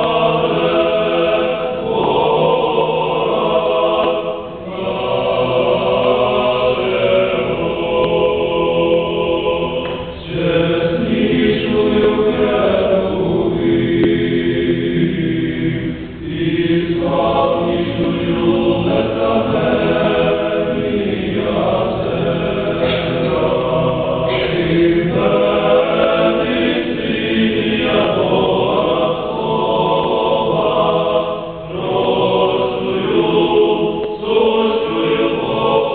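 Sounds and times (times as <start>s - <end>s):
choir singing unaccompanied chant: 0.0s - 35.9s.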